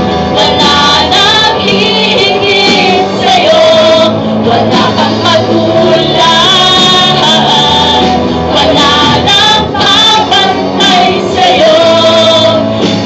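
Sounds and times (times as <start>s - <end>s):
bass guitar: 0.0s - 13.0s
electric guitar: 0.0s - 13.0s
woman singing into microphone: 0.3s - 13.0s.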